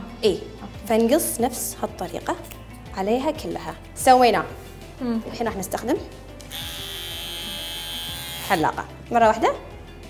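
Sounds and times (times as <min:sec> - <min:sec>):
electric hair clipper buzzing: 0:06.4 - 0:08.8.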